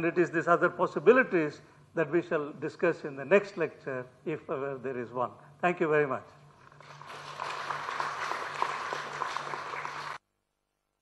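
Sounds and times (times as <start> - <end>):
audience applauding: 6.7 - 10.2.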